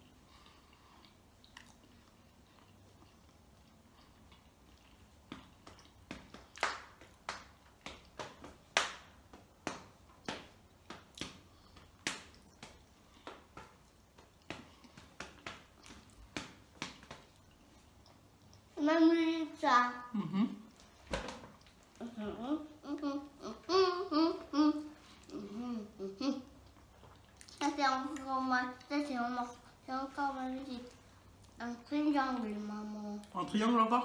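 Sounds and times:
mouth smacks from chewing: 1.0 - 6.0.

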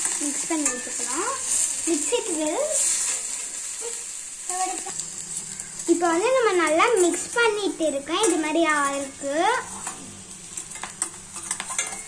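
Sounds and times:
steel spatula stirring: 0.0 - 12.0
vegetables sizzling in hot oil: 0.0 - 12.0.

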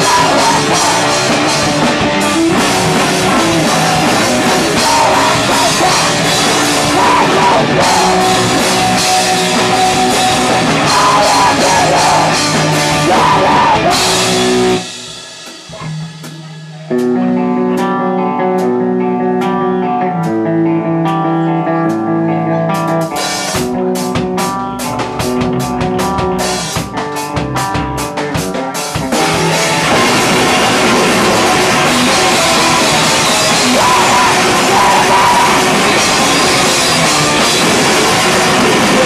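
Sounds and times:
electric guitar chords: 0.0 - 39.0
live rock band playing: 0.0 - 39.0.

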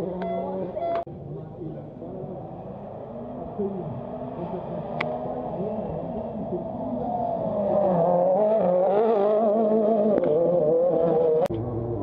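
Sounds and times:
rally car engine revving: 0.9 - 12.0.

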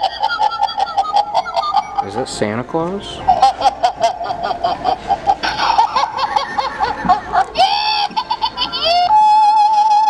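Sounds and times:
toy laugh-like calls: 0.0 - 2.3, 3.3 - 10.0.

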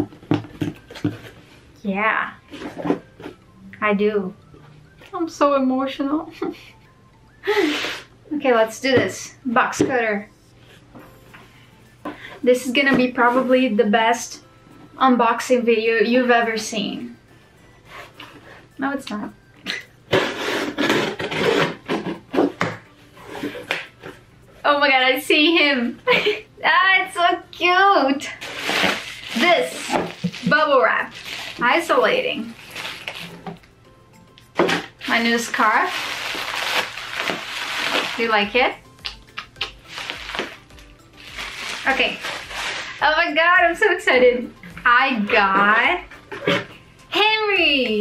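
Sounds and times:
box cutter slicing cardboard: 20.1 - 22.6, 28.5 - 30.4.

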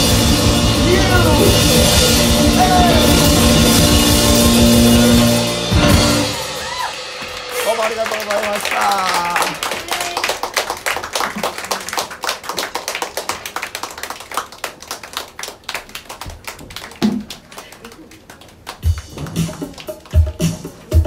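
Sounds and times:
music with deep regular beat: 0.0 - 6.6, 18.8 - 21.0
small audience clapping: 6.6 - 21.0.

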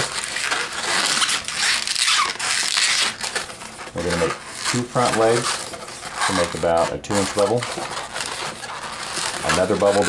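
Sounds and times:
balloon creaks: 0.0 - 10.0
balloon squeaks: 0.0 - 10.0
latex balloons rubbing: 0.0 - 10.0.

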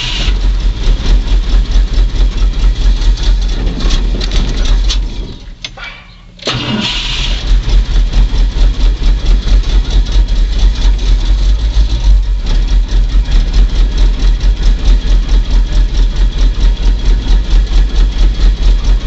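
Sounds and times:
engine starting and running: 0.0 - 19.0.

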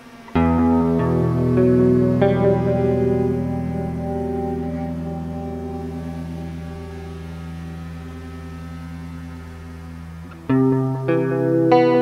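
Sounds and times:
low drone chord: 0.0 - 12.0.

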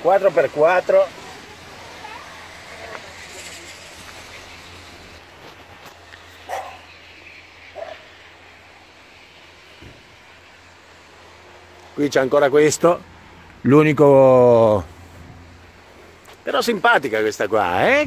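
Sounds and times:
short distant calls: 5.8 - 11.8.

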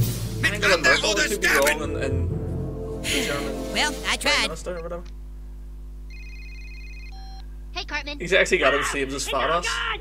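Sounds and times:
steady low hum: 0.0 - 10.0
phone warbling ring tone: 6.1 - 7.4.

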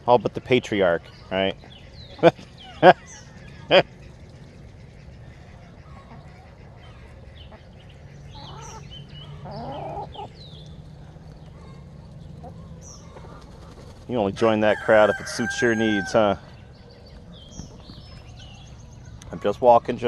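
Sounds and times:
chickens and ducks clucking: 0.2 - 20.0.

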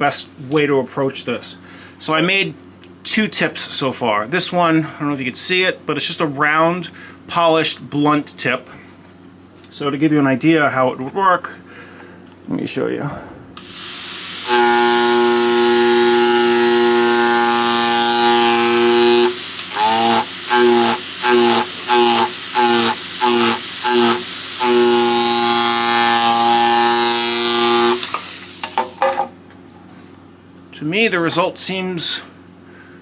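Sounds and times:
micromotor hammer handpiece buzzing: 13.6 - 29.2.

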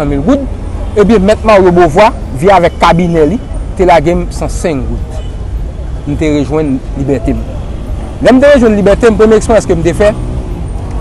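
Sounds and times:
man speaking into a microphone: 0.0 - 5.3, 6.0 - 7.6, 8.2 - 10.2.

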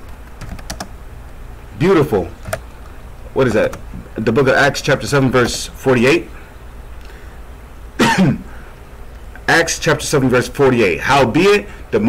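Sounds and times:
man coughing: 8.0 - 8.6.

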